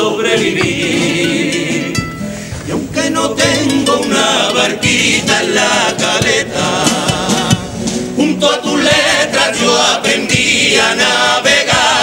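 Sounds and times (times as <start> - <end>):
men singing together: 0.0 - 12.0
sharp percussion strikes: 2.9 - 8.1.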